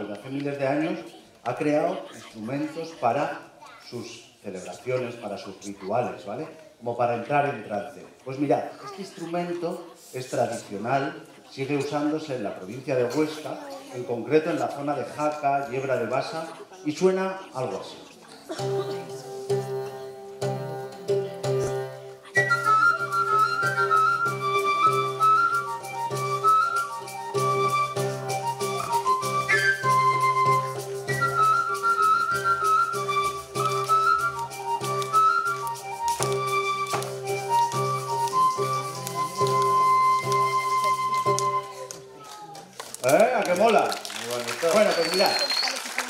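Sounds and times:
audience noise: 0:00.0 - 0:46.0
pipe melody: 0:18.6 - 0:42.1.

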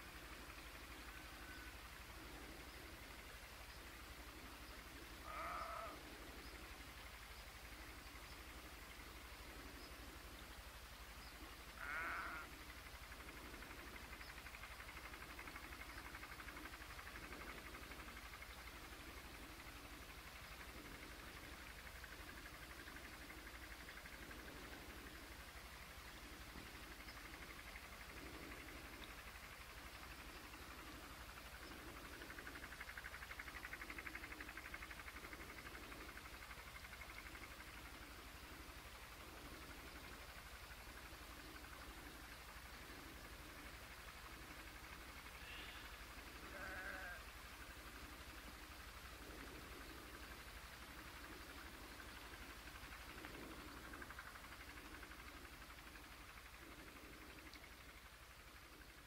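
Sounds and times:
faint high hiss: 0:00.0 - 0:59.0
soft low pulse: 0:00.0 - 0:59.0
sheep bleating: 0:05.2 - 0:06.0, 0:11.8 - 0:12.5, 0:45.4 - 0:47.2.

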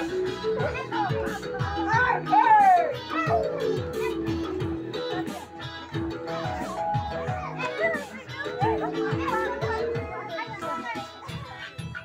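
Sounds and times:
crowd chattering and shouting: 0:00.0 - 0:12.0.

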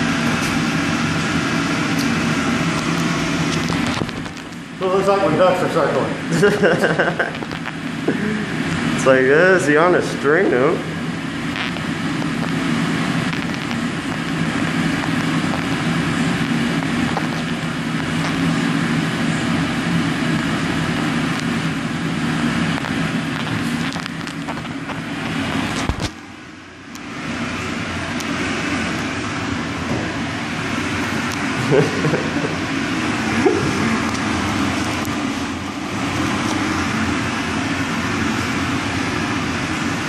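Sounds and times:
steady machine hum: 0:00.0 - 0:40.0.

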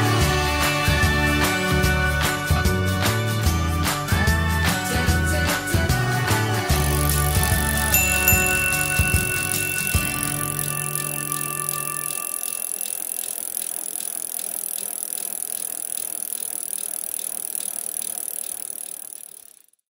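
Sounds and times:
music with held chords: 0:00.0 - 0:12.4
bicycle freewheel ticking: 0:06.7 - 0:19.9.

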